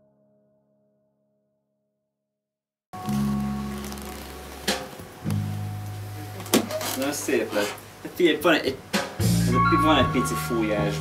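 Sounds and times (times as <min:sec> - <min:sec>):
plucked string notes: 0:09.2 - 0:11.0.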